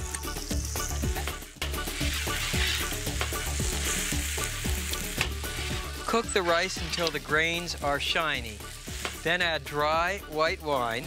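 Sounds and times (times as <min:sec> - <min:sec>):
sizzling in oil: 0:00.0 - 0:11.0
rice poured and stirred: 0:00.3 - 0:11.0.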